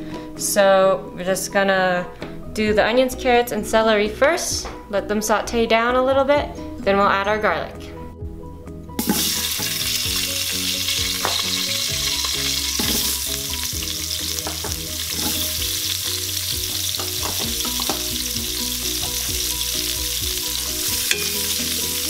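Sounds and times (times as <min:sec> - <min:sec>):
vegetables sizzling in hot oil: 0:09.0 - 0:22.0.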